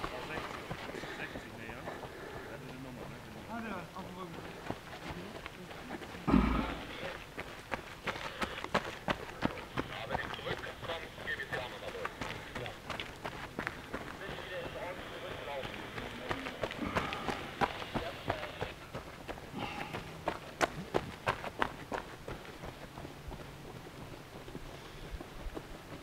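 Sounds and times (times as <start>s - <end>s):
indistinct voices: 0.0s - 7.4s, 8.2s - 20.9s
running footsteps on gravel: 0.0s - 26.0s.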